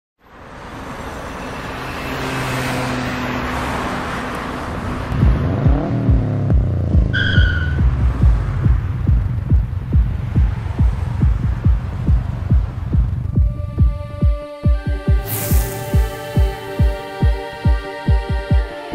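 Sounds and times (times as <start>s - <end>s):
road traffic passing: 0.2s - 14.2s, 15.1s - 18.9s
heavy bass beat thumping: 5.2s - 18.7s
short high tone: 15.2s - 17.0s.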